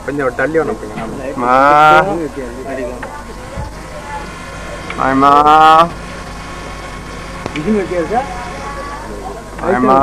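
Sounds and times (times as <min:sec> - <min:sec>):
car engine humming: 0:00.0 - 0:10.0.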